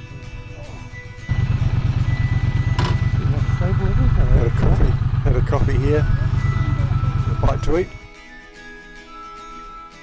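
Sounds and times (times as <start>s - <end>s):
background music: 0.0s - 10.0s
motorcycle engine rumbling: 0.3s - 8.0s.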